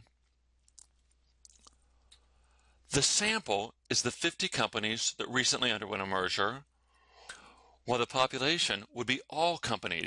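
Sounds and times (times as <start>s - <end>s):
person speaking: 2.9s - 6.7s.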